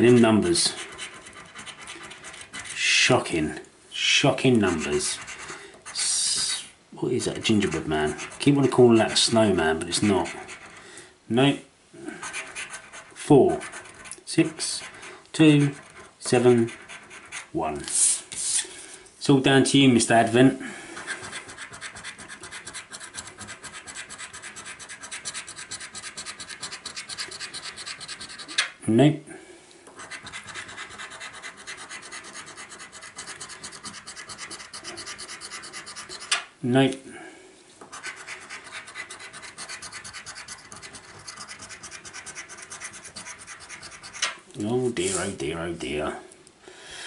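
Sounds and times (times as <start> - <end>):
scratchcard being scraped: 0.1 - 2.8, 4.6 - 6.2, 7.2 - 10.8, 12.2 - 17.6, 21.0 - 28.7, 30.0 - 36.4, 37.9 - 44.4.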